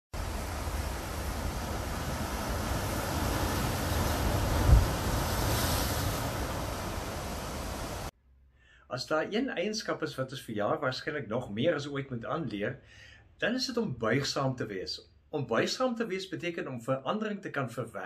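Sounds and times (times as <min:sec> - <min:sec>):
surf breaking over rocks: 0:00.2 - 0:08.1
wind buffeting microphone: 0:00.2 - 0:08.1.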